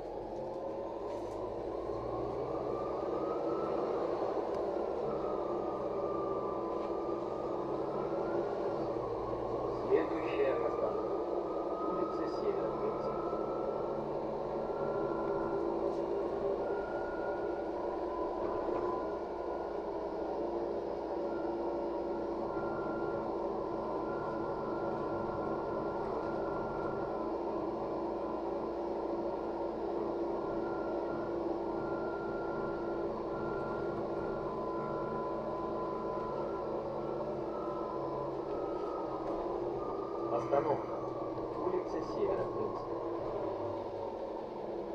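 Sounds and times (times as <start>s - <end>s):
bus engine and road noise: 0.0s - 44.9s.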